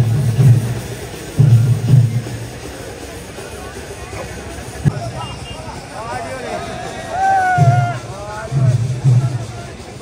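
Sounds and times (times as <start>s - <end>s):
crowd shouting and calling: 4.0s - 10.0s.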